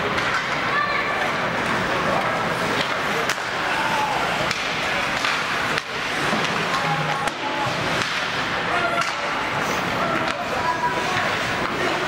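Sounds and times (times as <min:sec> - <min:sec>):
hockey sticks and puck clacking: 0:00.0 - 0:12.0
skates scraping ice: 0:00.0 - 0:12.0.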